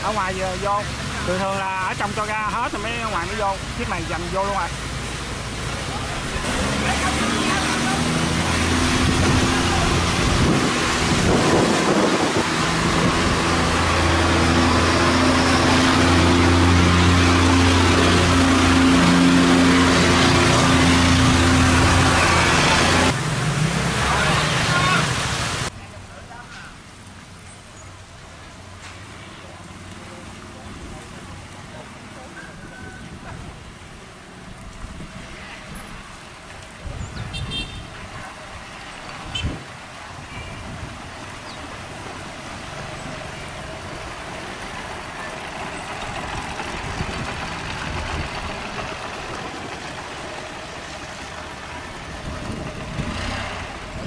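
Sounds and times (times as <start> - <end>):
boat engine hum: 0.0 - 36.8, 37.4 - 54.0
water rushing through sluice gate: 0.0 - 54.0.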